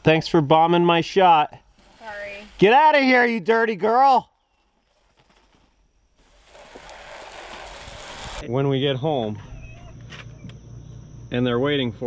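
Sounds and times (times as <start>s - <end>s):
water spraying from a hose: 6.2s - 8.4s.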